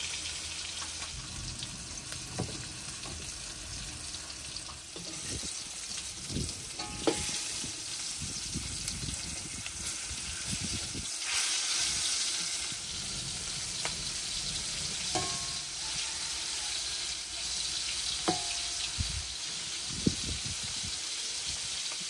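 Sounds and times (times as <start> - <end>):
fish sizzling in hot oil: 0.0 - 22.0
metal spatula scraping a pan: 4.5 - 6.0, 6.7 - 8.1, 11.2 - 19.1.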